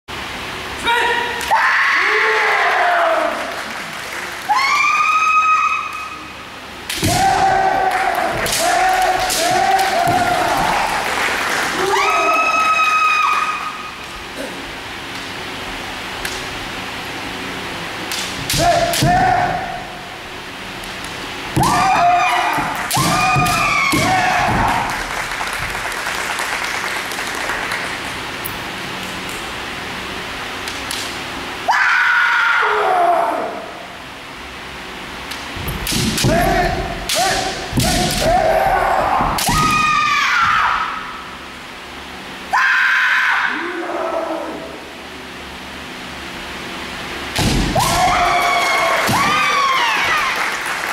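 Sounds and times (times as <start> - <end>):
faint background hum: 0.1 - 50.9
person shouting: 0.8 - 1.4, 18.5 - 19.8
people yelling: 0.8 - 3.6, 7.0 - 13.9, 18.5 - 20.0, 21.6 - 25.2, 31.7 - 33.7, 36.2 - 41.2, 42.5 - 44.8, 47.8 - 50.7
bamboo sword strikes: 6.9 - 7.5, 18.1 - 19.6, 35.8 - 38.4.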